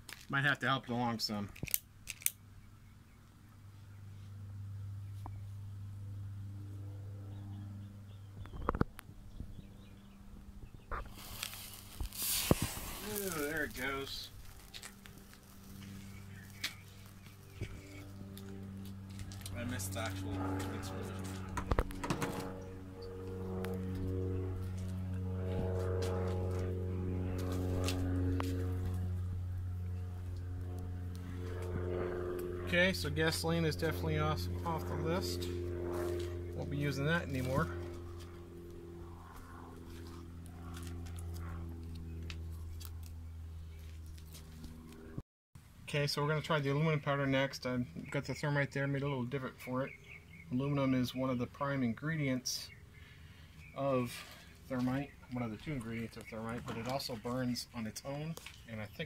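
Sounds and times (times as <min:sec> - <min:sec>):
low steady hum: 0:00.0 - 0:59.0
sparkler fizzing: 0:11.2 - 0:13.8.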